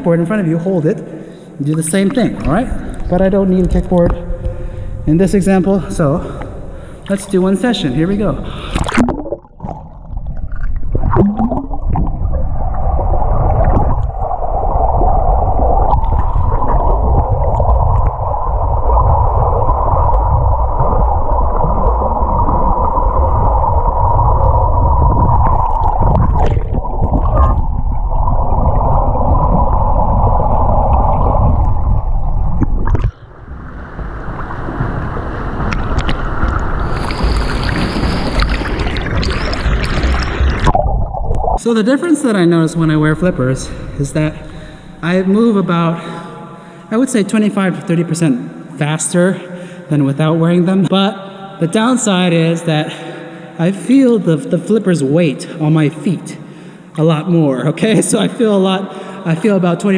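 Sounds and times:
water splashing: 1.7 - 45.6
muffled underwater water rush: 1.7 - 47.1.

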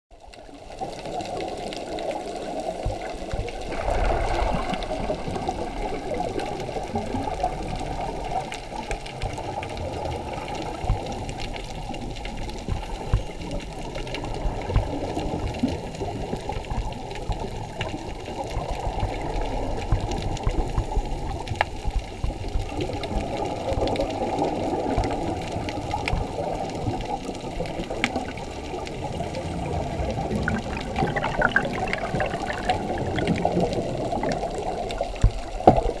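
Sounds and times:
faint underwater clicks: 0.1 - 36.0
muffled underwater wash: 0.1 - 36.0
underwater bursts: 22.4 - 36.0.

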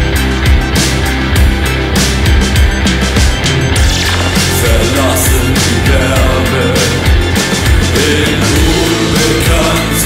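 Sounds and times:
punk rock band playing: 0.0 - 10.0.

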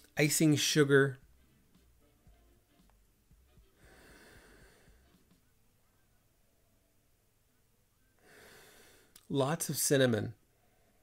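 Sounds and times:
person sniffing through nose: 3.8 - 5.0.

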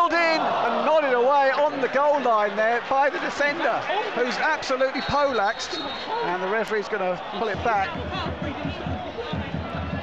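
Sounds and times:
commentator speaking: 0.0 - 9.0
football crowd rumble: 0.0 - 10.0.

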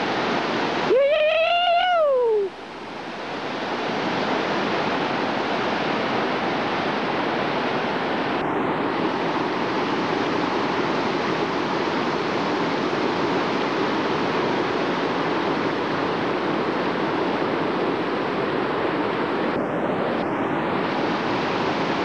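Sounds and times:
whitewater rapids roaring: 0.0 - 22.0.

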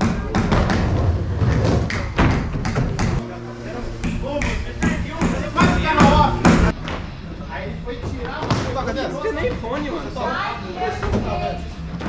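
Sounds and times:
skateboard wheels rolling on wood: 0.1 - 3.2.

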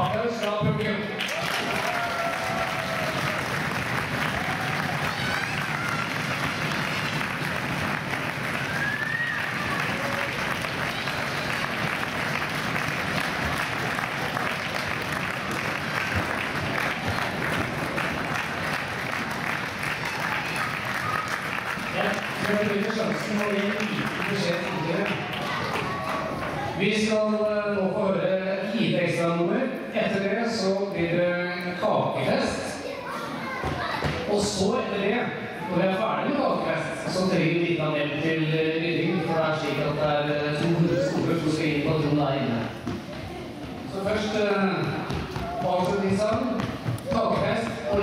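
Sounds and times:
audience applauding: 1.1 - 26.8.

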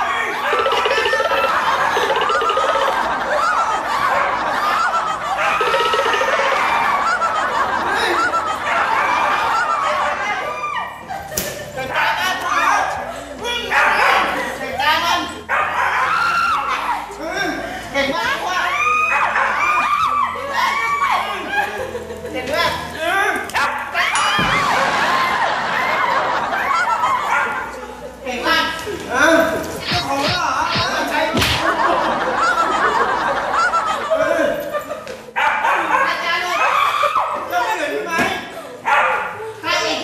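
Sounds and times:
loud human voices: 0.0 - 40.0
people shrieking and yelling: 0.0 - 40.0
dog barking and yipping: 15.5 - 16.5, 35.4 - 37.2, 38.9 - 39.4.

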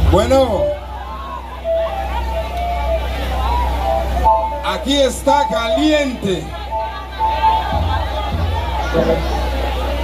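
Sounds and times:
crowd voices chattering: 0.0 - 10.0
low hum from pa system: 0.0 - 10.0.

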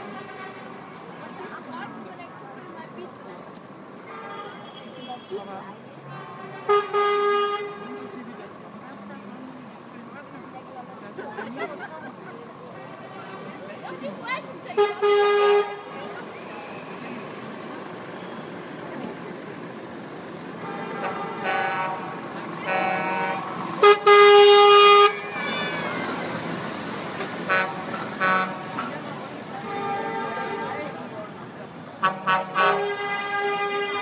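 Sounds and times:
vehicle horns honking: 4.0 - 8.0, 14.7 - 16.1, 20.6 - 25.8, 27.5 - 31.1, 32.0 - 34.0.

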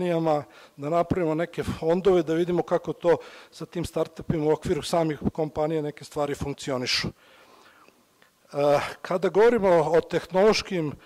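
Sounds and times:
man speaking into a microphone: 0.0 - 7.2, 8.5 - 11.0.

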